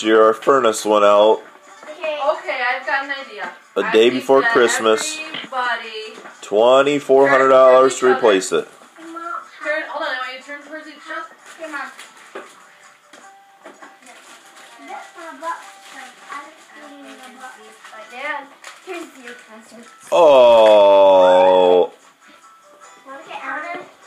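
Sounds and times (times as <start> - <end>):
loud vocal cry: 20.1 - 21.9.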